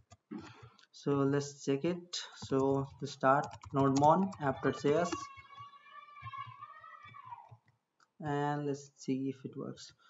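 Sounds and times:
computer mouse clicks: 3.4s - 5.2s.

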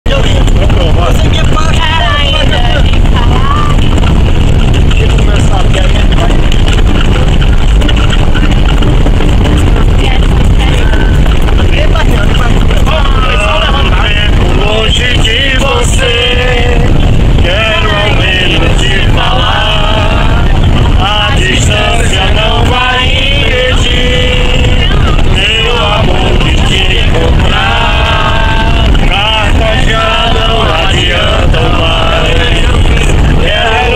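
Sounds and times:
bus rumbling inside cabin: 0.0s - 33.9s
people's voices: 0.0s - 33.9s.

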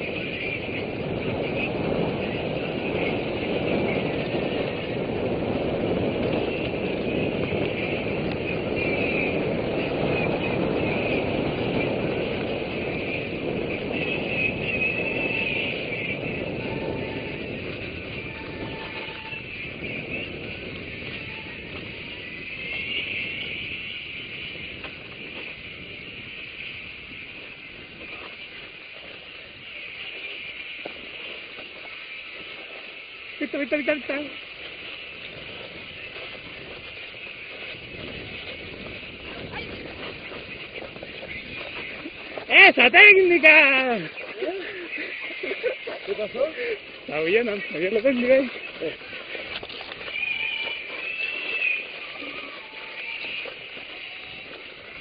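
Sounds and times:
bike rolling on dirt trail: 0.0s - 55.0s
wind on microphone: 0.0s - 55.0s.

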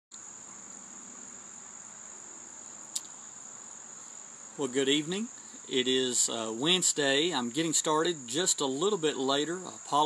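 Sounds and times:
crickets trilling: 0.1s - 10.0s
sharp click: 2.9s - 3.2s.

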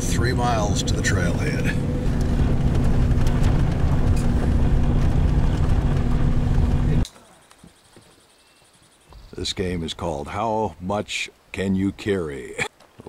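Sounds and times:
engine and tyre rumble on gravel: 0.0s - 7.1s.

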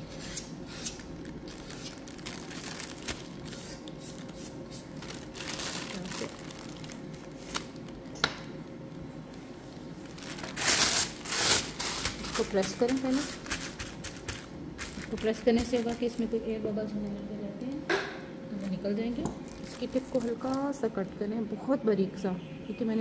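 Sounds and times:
plastic bag crinkling: 0.9s - 8.2s, 9.9s - 16.4s, 19.4s - 20.9s.

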